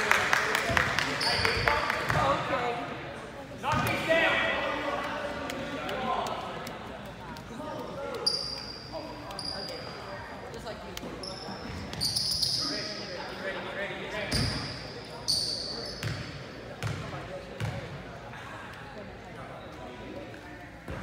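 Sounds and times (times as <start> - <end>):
basketball bouncing: 16.8 - 17.8.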